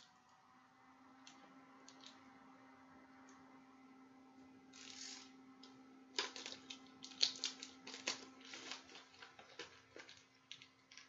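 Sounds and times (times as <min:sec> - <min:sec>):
faint steady hum: 0:00.0 - 0:11.0
packaging crinkles and clicks: 0:06.1 - 0:11.0
packaging rustling: 0:06.2 - 0:11.0.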